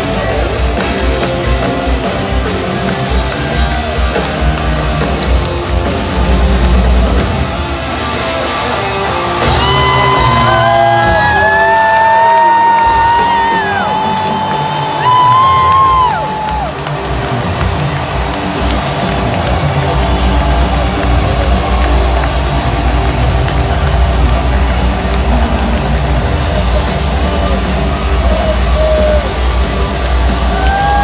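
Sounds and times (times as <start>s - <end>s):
crowd yelling and cheering: 0.0s - 31.0s
live rock band playing: 0.0s - 31.0s.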